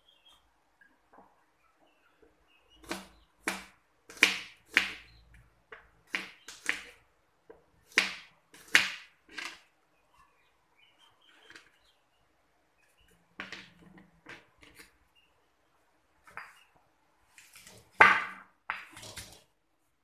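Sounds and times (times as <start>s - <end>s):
cleaver chopping on plastic board: 2.8s - 5.0s.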